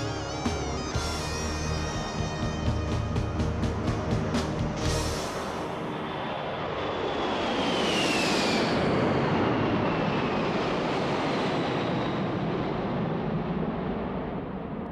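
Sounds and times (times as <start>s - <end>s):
high fan whine: 0.0s - 14.9s
jet engines passing overhead: 0.0s - 14.9s.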